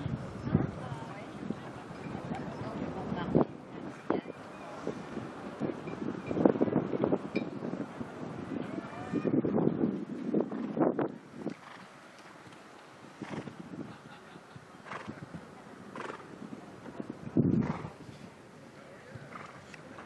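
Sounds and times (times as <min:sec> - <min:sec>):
horse hooves cantering on turf: 0:19.0 - 0:20.0.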